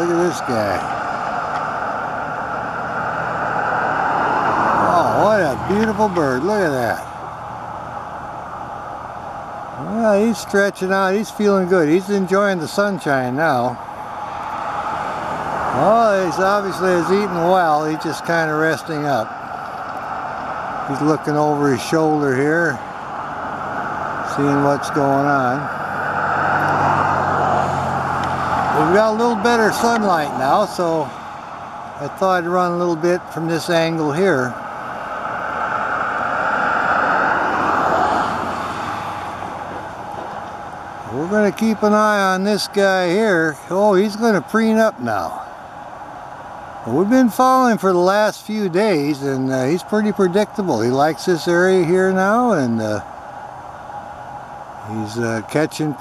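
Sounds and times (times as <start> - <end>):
low engine hum: 0.0 - 56.0
road traffic hiss: 0.0 - 56.0.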